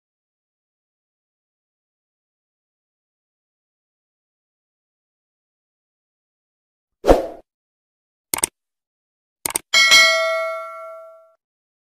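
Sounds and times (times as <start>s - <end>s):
bell-like ding: 9.8s - 11.4s.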